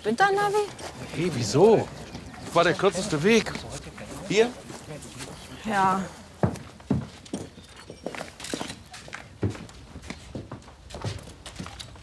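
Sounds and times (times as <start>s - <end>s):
footsteps on wooden floorboards: 0.7s - 12.0s.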